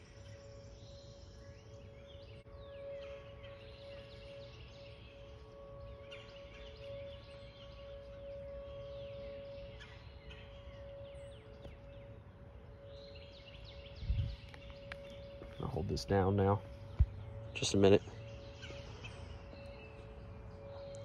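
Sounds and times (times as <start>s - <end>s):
birds chirping: 0.0s - 21.0s
distant warning sirens: 0.0s - 21.0s.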